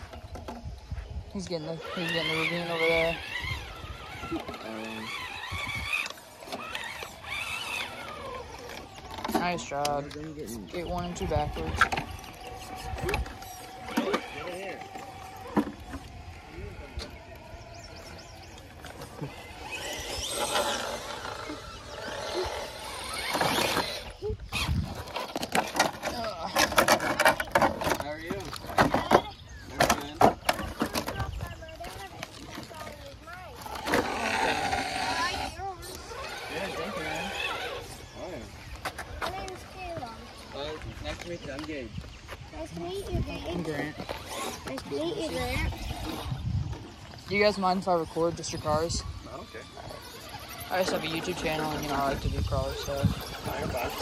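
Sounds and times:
small electric motor whining: 0.0 - 41.9, 42.6 - 54.0
indistinct voices: 0.0 - 54.0.

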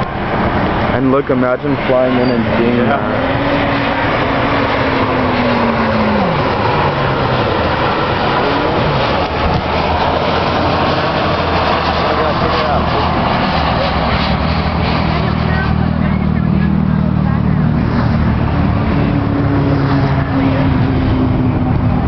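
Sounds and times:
highway traffic: 0.0 - 22.0
vehicle passing by: 0.0 - 22.0.

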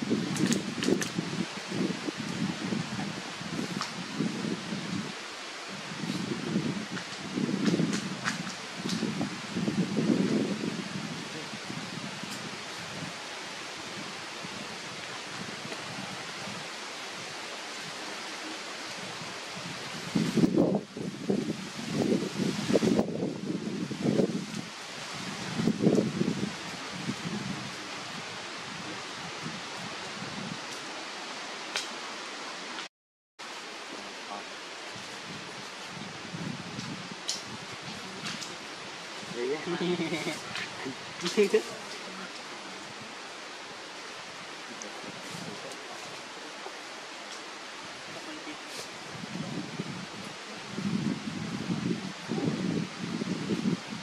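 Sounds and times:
dry leaves rustling: 33.5 - 52.4
hiss: 48.1 - 49.1.

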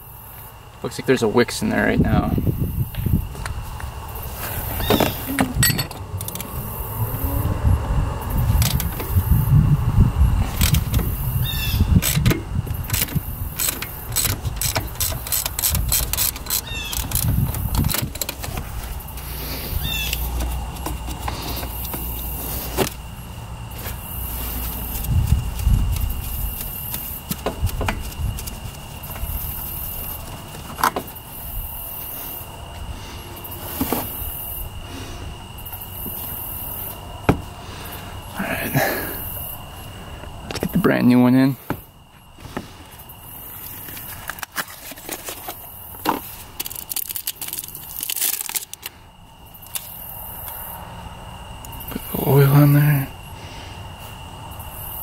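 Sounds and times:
low rumbling handling noise: 1.6 - 41.0
short squeaks: 4.6 - 6.0, 13.6 - 18.1, 19.5 - 20.5
metallic clicks and scrapes: 12.0 - 23.0.

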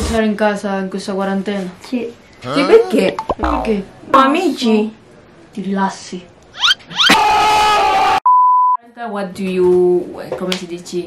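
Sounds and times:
test-tone beep: 8.3 - 8.8.

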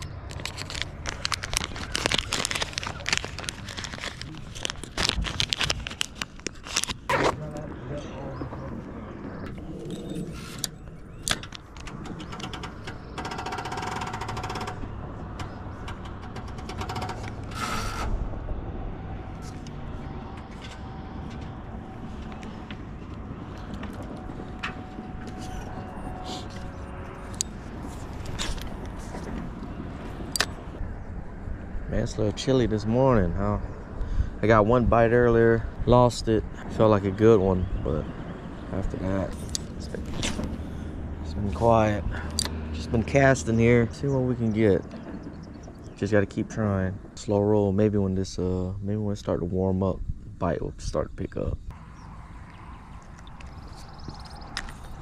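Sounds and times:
low steady rumble: 0.0 - 55.0
plastic bag crinkling: 0.3 - 7.0.

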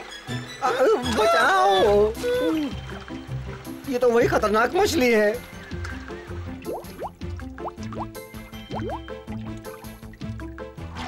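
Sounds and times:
cartoon background music: 0.0 - 11.0
bubbling water bloops: 5.7 - 10.4.

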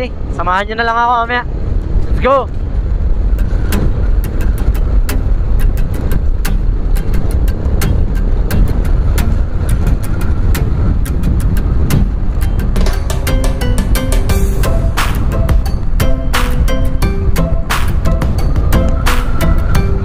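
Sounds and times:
wind noise: 0.0 - 20.0
motorcycle engine rumble: 1.6 - 20.0
background music with clicking beat: 3.3 - 20.0.

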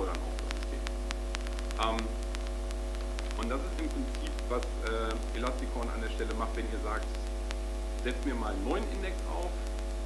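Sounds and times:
buzzy steady tones: 0.0 - 10.0
electrical mains hum: 0.0 - 10.0.

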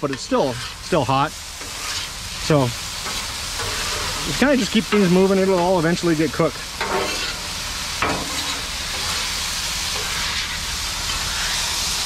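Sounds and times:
chicken sizzling on a griddle: 0.0 - 12.0.

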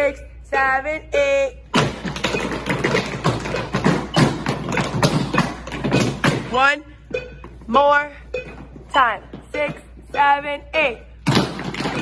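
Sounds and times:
tap shoes on hard floor: 8.6 - 10.3.

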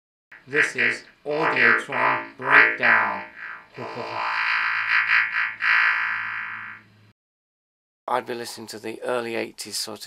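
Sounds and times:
buzzy distorted synthesizer tone: 0.4 - 7.1
steady low synth note: 0.4 - 7.1.

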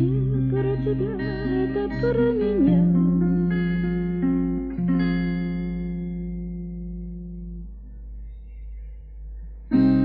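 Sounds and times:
acoustic guitar chord ringing: 0.0 - 7.4.

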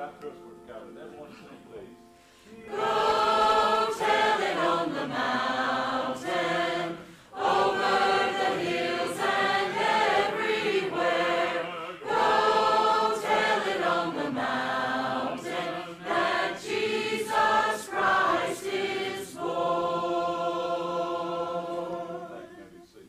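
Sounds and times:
choir singing a hymn: 2.5 - 23.0.

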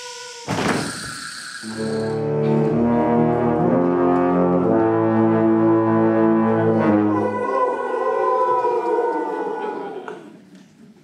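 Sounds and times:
wind band sustained brass chord: 1.6 - 7.8.

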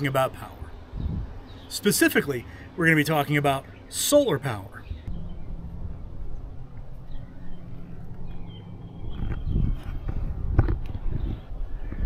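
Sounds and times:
low rumble: 5.0 - 12.0.

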